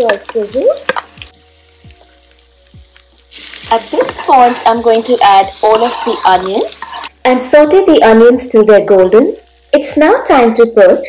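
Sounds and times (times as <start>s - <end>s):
soft music with steady beat: 0.0s - 4.2s.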